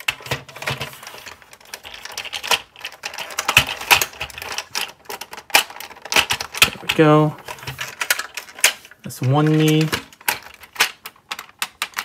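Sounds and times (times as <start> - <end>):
plastic toy parts clicking: 0.0 - 12.0.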